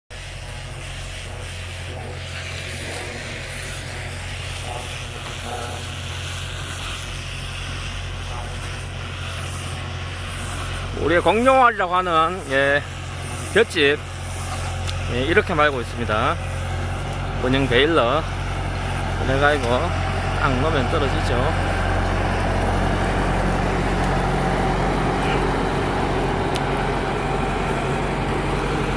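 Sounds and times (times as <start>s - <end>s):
tractor diesel engine running: 0.1s - 28.9s.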